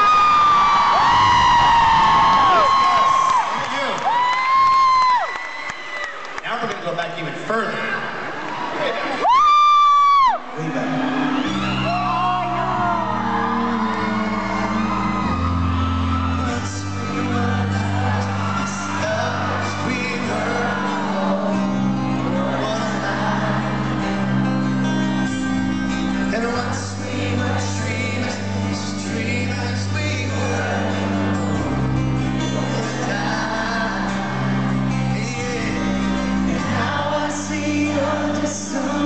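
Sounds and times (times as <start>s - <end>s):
high-pitched scream: 0.0s - 3.4s
crowd voices: 0.0s - 39.0s
acoustic guitars: 10.4s - 39.0s
keyboard chords: 10.4s - 39.0s
person singing: 11.8s - 24.6s, 26.2s - 39.0s.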